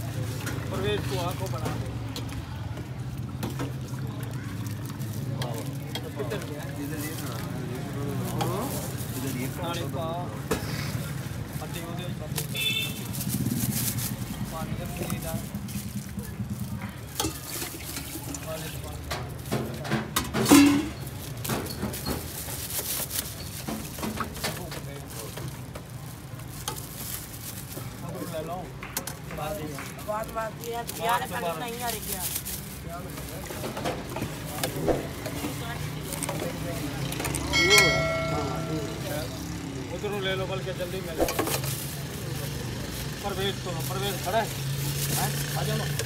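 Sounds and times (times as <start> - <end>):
curry pouring into plastic bag: 2.3 - 10.3, 10.9 - 19.8, 20.9 - 28.5, 30.0 - 36.9, 40.7 - 45.9
people talking: 28.0 - 41.3
steel utensil ringing: 37.5 - 39.5.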